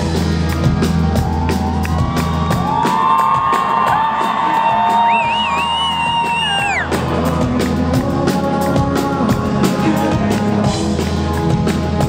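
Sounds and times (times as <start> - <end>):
rock band playing live: 0.0 - 12.0.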